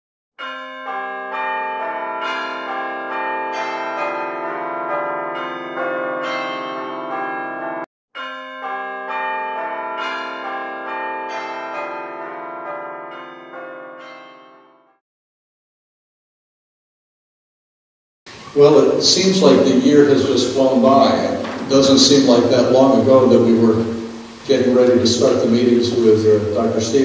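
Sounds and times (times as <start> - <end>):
church bells ringing: 0.4 - 15.0, 18.6 - 27.0.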